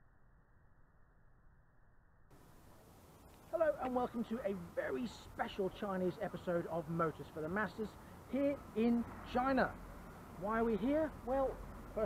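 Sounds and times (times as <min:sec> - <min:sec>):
faint hiss: 0:02.3 - 0:12.0.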